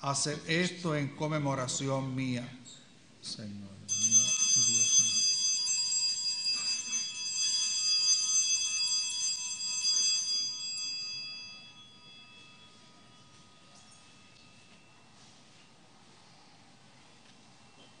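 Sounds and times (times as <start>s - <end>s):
altar bells ringing: 3.9s - 16.4s.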